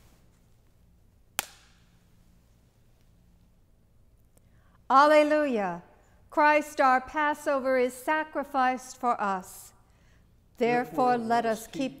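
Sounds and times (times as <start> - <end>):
wafer snapping in two: 1.4 - 1.9.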